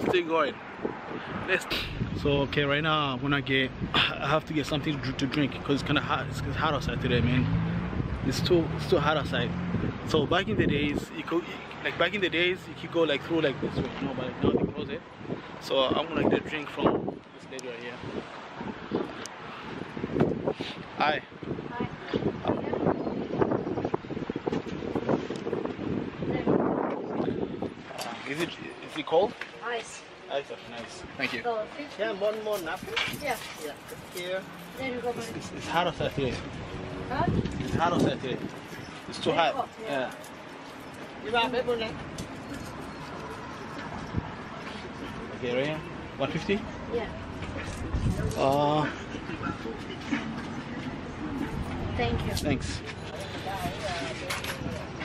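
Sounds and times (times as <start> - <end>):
wind buffeting microphone: 0.0 - 2.8, 3.4 - 11.4, 17.9 - 28.7, 34.8 - 39.6, 46.4 - 55.0
steady background noise: 0.0 - 55.0.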